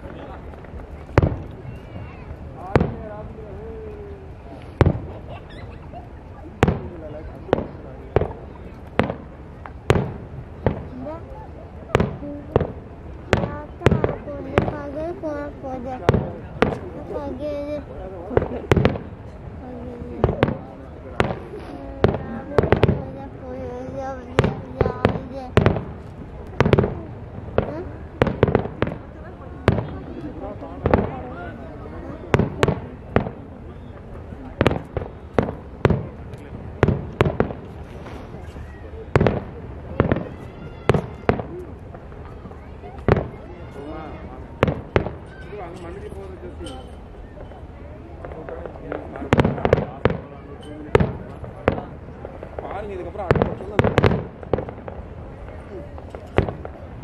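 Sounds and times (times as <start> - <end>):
voices: 0.0 - 57.0.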